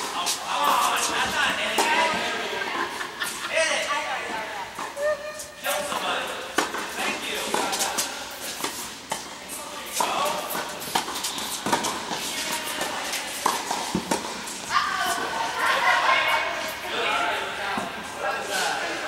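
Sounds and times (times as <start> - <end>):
tennis balls bouncing on hard court: 0.0 - 2.6, 5.7 - 16.4
tennis balls struck by rackets: 5.7 - 16.3.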